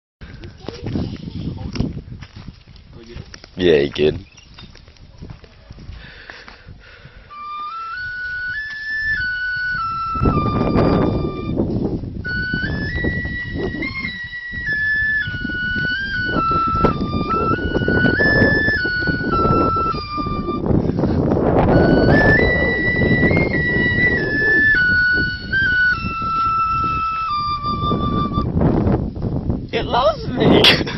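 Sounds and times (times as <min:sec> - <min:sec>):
small flute playing a tune: 0:07.3 - 0:28.6.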